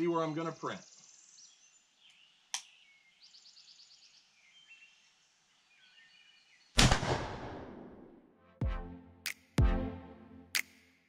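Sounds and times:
faint bird chirps: 0.0 - 6.8
shotgun shot: 6.8 - 8.1.

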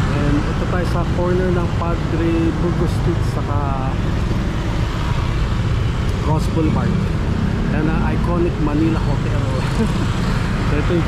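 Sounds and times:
cars passing: 0.0 - 11.0
low rumble of engines and tyres: 0.0 - 11.0.

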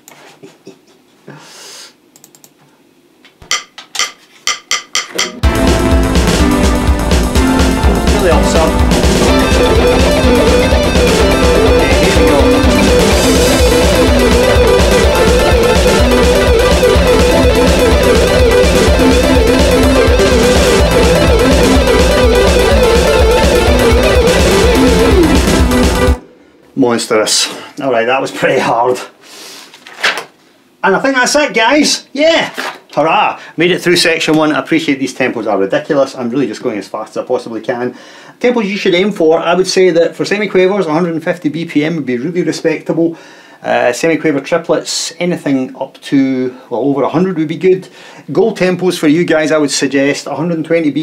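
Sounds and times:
man laughing: 0.3 - 1.2
fast backing track with drums: 3.5 - 26.2
fast electric guitar run: 5.4 - 26.2
sharp evenly spaced clicks: 9.0 - 26.2.

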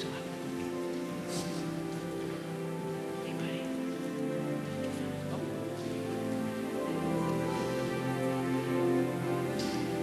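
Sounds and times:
faint hiss: 0.0 - 10.0
soft sustained instrumental chords: 0.0 - 10.0.

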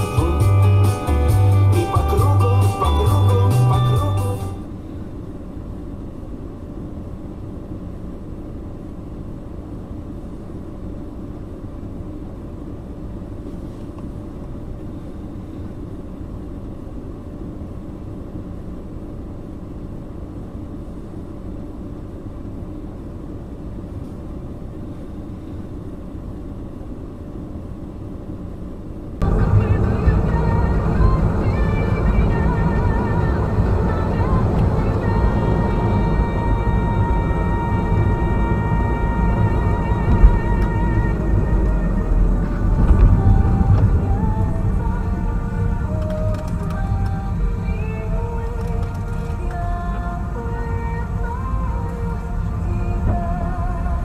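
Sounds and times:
loud music: 0.0 - 4.6
car cabin noise: 0.0 - 54.0
car engine idling: 0.0 - 54.0.

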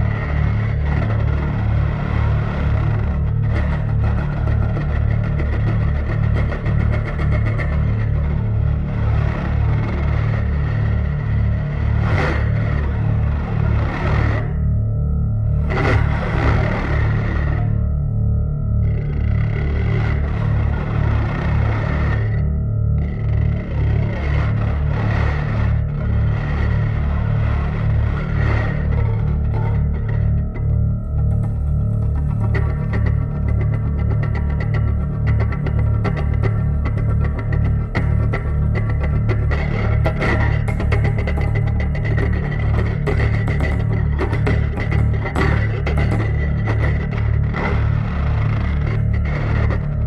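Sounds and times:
noisy scrape: 0.0 - 14.8, 15.5 - 17.9, 19.0 - 50.0
bass guitar buzzing drone: 0.0 - 50.0.

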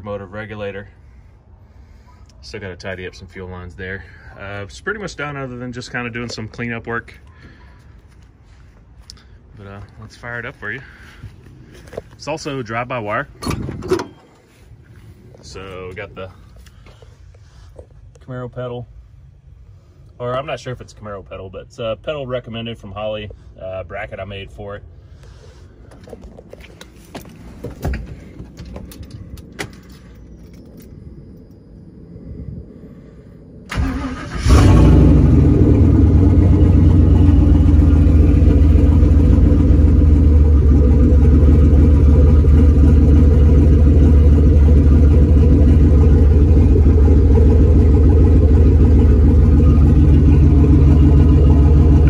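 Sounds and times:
engine starter clicks: 33.7 - 35.0
car engine idling: 33.7 - 52.0
engine cranking: 33.7 - 52.0.

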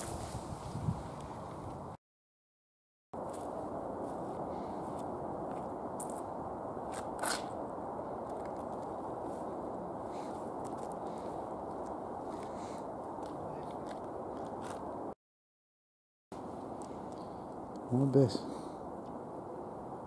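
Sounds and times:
steady outdoor noise: 0.0 - 2.0, 3.2 - 15.2, 16.3 - 20.0
footsteps on wet grass and mud: 3.2 - 6.3.

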